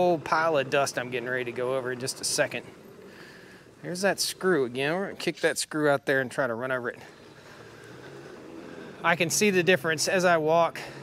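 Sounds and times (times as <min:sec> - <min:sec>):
floor sweeper whirring on concrete: 0:00.0 - 0:11.0.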